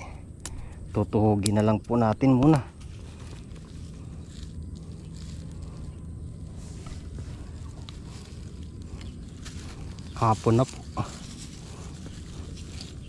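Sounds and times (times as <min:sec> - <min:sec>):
steady low rumble: 0:00.0 - 0:13.0
faint rustling: 0:02.7 - 0:13.0.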